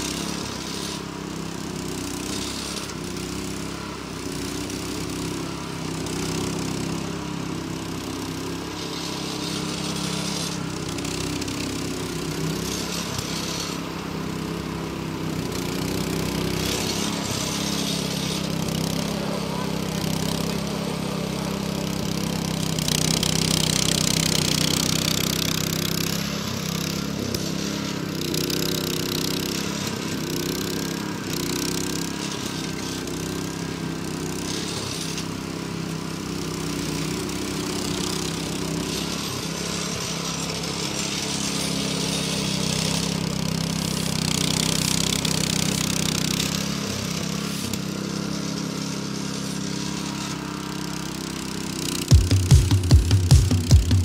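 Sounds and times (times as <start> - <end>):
rake tines hissing through grass: 0.0 - 54.0
small gasoline engine running: 0.0 - 54.0.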